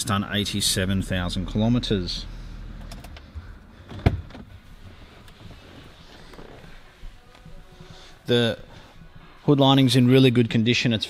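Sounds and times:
car engine idling: 0.0 - 6.4.

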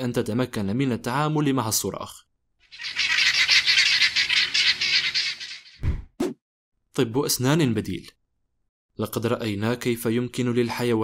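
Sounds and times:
guinea fowl alarm chatter: 2.7 - 5.8.

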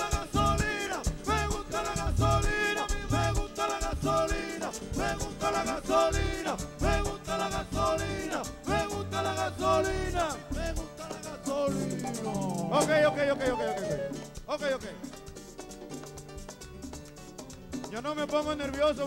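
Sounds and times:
live merengue band playing: 0.0 - 19.0.

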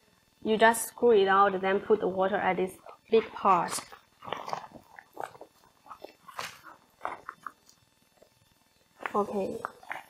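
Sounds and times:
plastic bladder crinkling: 3.6 - 8.3.

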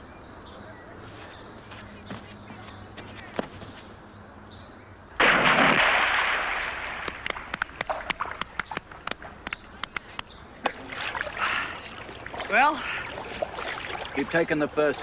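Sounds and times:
loud splash into pool: 5.2 - 8.4
falling water drips: 5.2 - 10.0, 10.6 - 15.0.

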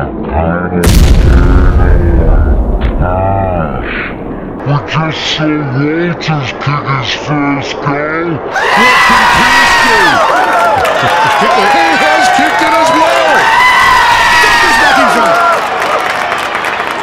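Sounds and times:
stadium crowd cheering: 4.6 - 17.0.

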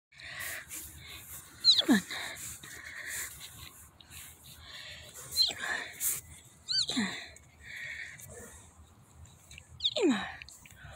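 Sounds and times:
puppies breathing: 0.2 - 10.9.

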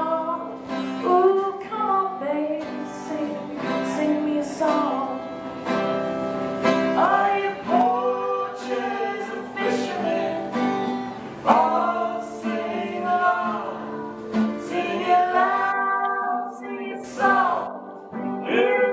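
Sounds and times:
woman and man singing folk song: 0.0 - 5.8, 6.6 - 18.9
strummed acoustic guitar: 0.0 - 18.9.

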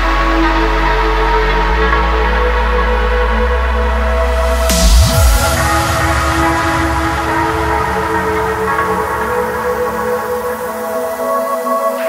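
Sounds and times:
trance synth chords over bass: 0.0 - 12.0.

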